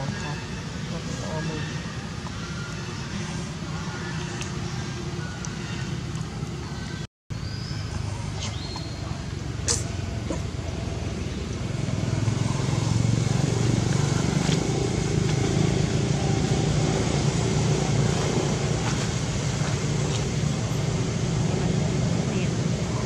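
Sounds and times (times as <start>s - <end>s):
low motor rumble: 0.0s - 23.0s.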